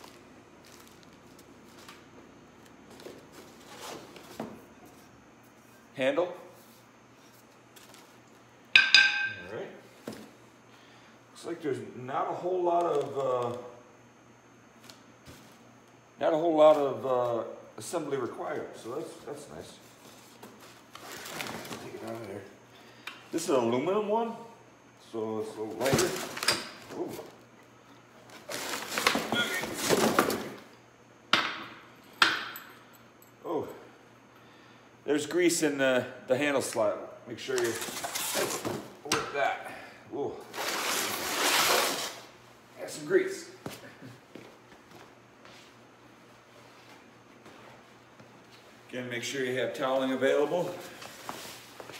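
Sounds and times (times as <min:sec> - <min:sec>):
metal tube clanking on concrete: 0:08.8 - 0:09.4.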